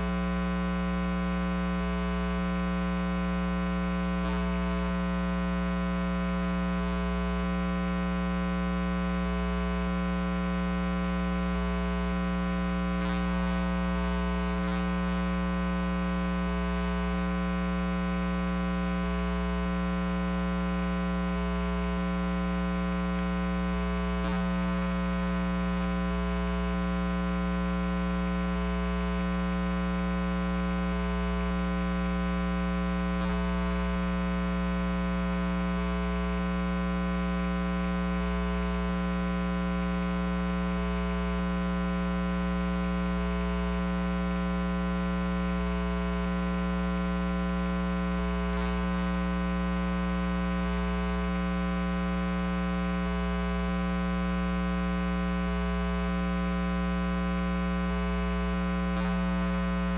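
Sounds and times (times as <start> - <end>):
electrical mains hum: 54.5 - 59.9.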